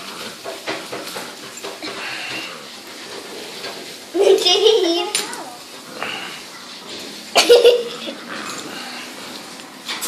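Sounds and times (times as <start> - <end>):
paws scrabbling on tiled floor: 0.0 - 10.0.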